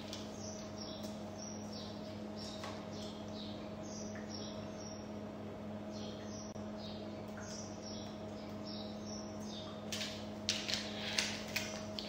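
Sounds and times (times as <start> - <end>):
small birds chirping: 0.0 - 12.0
steady low hum: 0.0 - 12.0.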